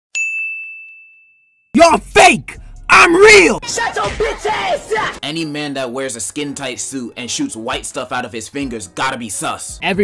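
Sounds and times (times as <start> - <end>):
high bell-like ding: 0.1 - 1.7
man shouting: 1.8 - 5.2.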